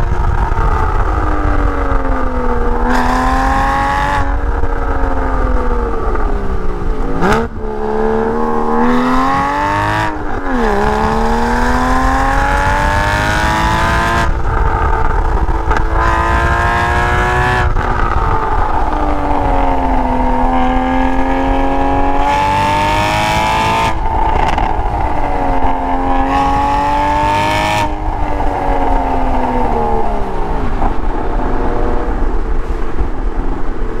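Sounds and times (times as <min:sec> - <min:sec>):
sports car engine revving: 0:00.0 - 0:32.9.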